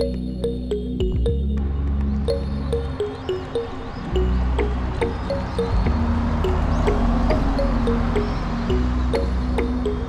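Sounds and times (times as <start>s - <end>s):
held low bass: 4.1s - 10.0s.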